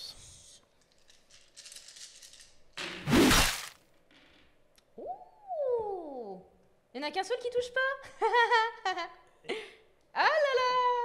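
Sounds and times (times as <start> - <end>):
dice rattling in hands: 0.9 - 2.6
person saying oooh: 5.0 - 6.5.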